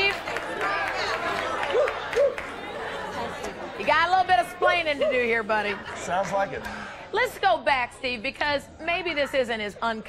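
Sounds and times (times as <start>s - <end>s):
audience chattering: 0.0s - 10.0s.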